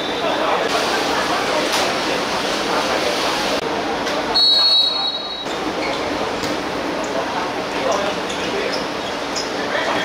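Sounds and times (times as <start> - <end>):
shrill whistle blast: 4.4 - 5.5.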